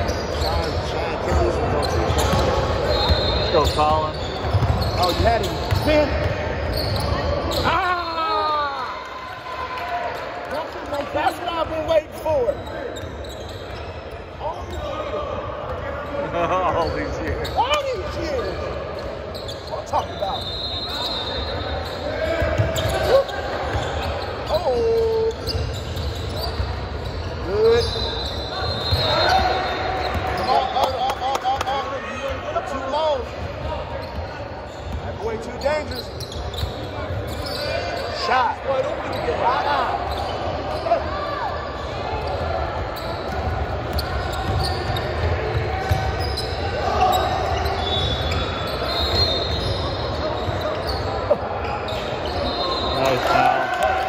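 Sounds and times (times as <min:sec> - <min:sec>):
sneaker squeaks: 0:00.0 - 0:09.1, 0:10.2 - 0:54.0.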